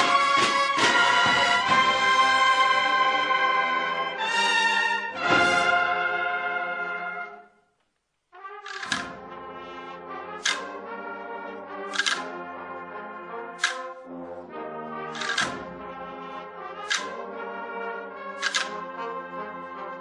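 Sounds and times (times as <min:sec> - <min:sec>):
bugle chords: 0:00.0 - 0:07.4, 0:08.4 - 0:20.0
drum strikes: 0:15.2 - 0:15.7.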